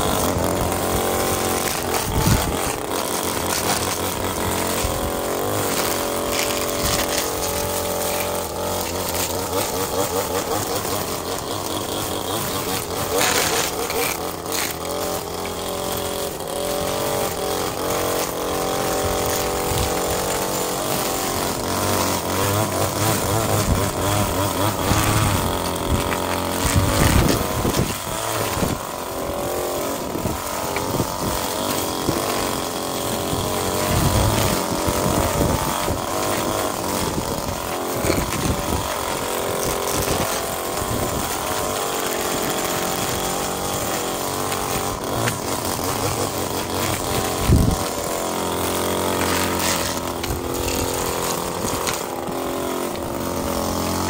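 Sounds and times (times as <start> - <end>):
string trimmer engine: 0.0 - 54.0
trimmer line scraping pavers: 0.0 - 54.0.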